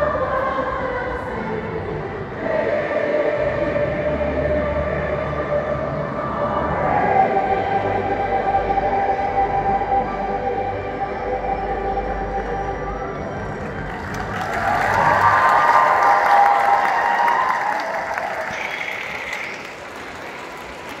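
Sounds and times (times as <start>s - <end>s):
choir singing held chord: 0.0s - 16.0s
audience applause: 13.6s - 21.0s
crowd cheering: 13.6s - 21.0s.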